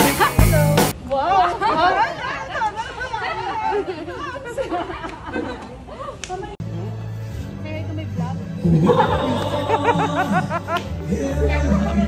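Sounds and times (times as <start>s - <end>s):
background music with drum beat: 0.0s - 1.0s.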